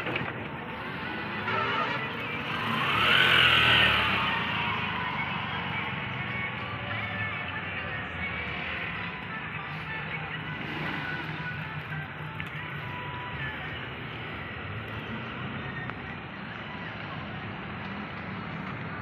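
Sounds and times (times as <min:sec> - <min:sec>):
steady traffic rumble: 0:00.0 - 0:19.0
vehicle passing: 0:00.6 - 0:19.0.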